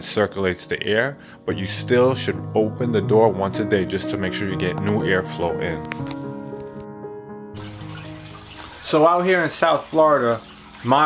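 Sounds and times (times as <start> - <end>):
man's voice: 0.0 - 5.9
soft music with held notes: 0.0 - 11.0.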